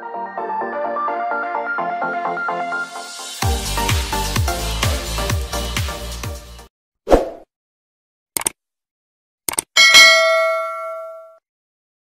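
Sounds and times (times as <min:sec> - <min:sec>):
bell ding: 0:09.8 - 0:11.4.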